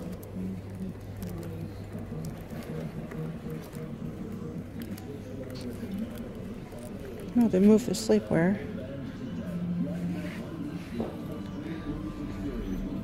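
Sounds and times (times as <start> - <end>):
indistinct background voices: 0.0 - 13.0
music: 7.7 - 13.0.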